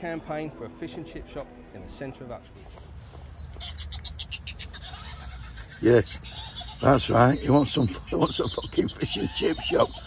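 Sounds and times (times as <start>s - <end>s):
toy playing recorded laughter: 3.6s - 10.0s.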